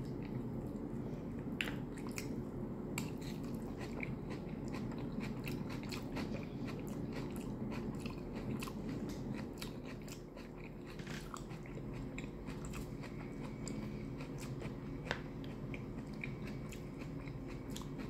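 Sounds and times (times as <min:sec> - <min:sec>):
crunchy chewing: 0:03.0 - 0:18.0.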